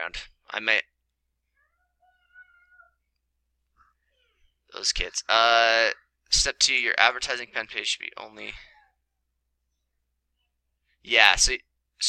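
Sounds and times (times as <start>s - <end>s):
faint high-pitched cry: 1.5s - 3.1s, 3.8s - 4.5s, 8.5s - 9.0s.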